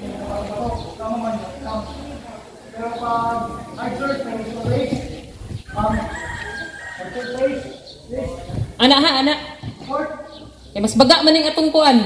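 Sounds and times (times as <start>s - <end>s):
rooster crowing: 5.7s - 7.8s.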